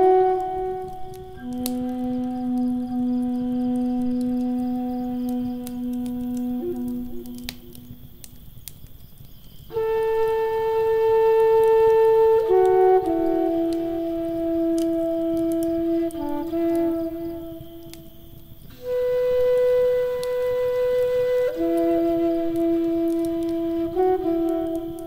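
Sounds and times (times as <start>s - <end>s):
flute playing slow melody: 0.0s - 8.7s, 9.7s - 25.0s
wood fire crackling: 0.0s - 25.0s.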